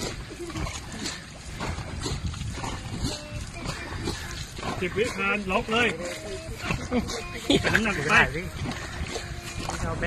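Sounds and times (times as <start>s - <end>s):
paddles stroking through water: 0.0s - 10.0s
wind noise on microphone: 0.0s - 10.0s.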